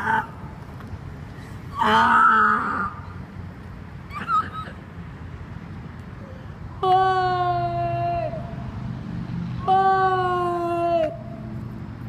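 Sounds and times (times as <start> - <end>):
woman wailing: 9.6 - 11.3.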